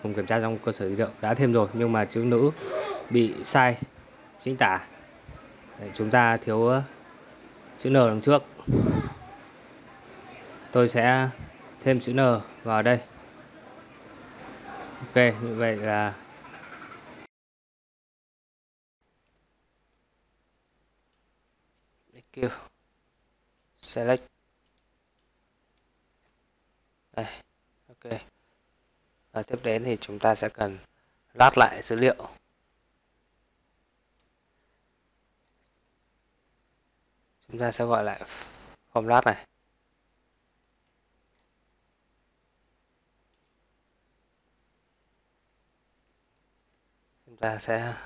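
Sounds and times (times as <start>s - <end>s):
computer mouse clicks: 24.6s - 26.4s, 43.3s - 43.6s
faint computer clicks: 43.3s - 43.6s.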